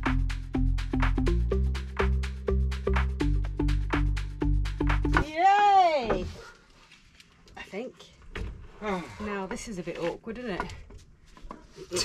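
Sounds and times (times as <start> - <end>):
background music with steady beat: 0.0 - 5.3.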